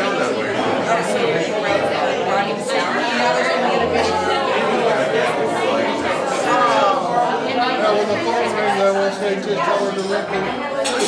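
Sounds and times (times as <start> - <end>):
men and women talking at once: 0.0 - 11.0.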